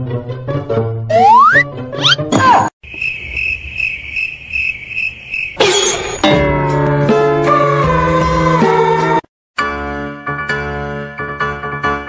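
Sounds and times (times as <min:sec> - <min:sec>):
sliding sound effect tones: 0:01.1 - 0:02.3
cricket chirping: 0:02.8 - 0:06.2.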